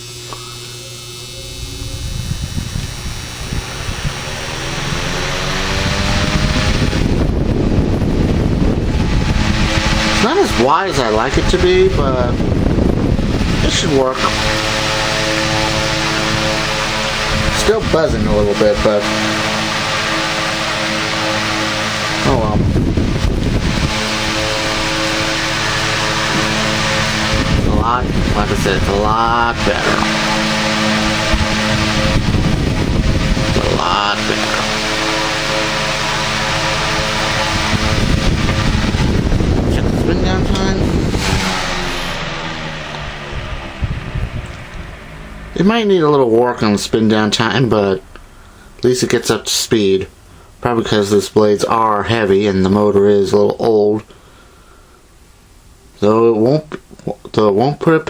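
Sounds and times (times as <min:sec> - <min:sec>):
electrical buzz: 0:00.0 - 0:57.6
electric fan air rush: 0:00.0 - 0:58.0.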